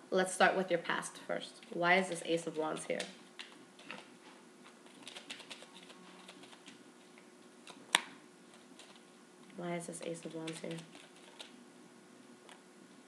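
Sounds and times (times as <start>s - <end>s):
cards being shuffled: 1.6s - 9.1s, 9.9s - 11.6s.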